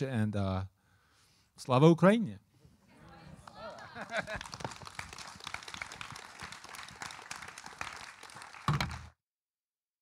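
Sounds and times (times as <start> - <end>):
audience applauding: 3.4 - 9.2.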